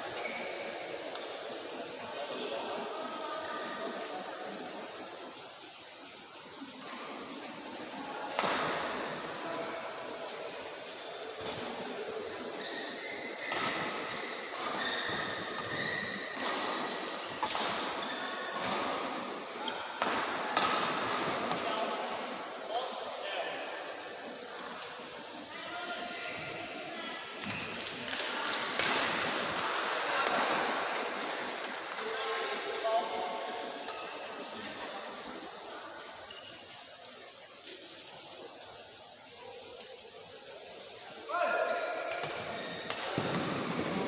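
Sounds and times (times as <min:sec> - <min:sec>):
murmur of voices: 0:00.0 - 0:14.7.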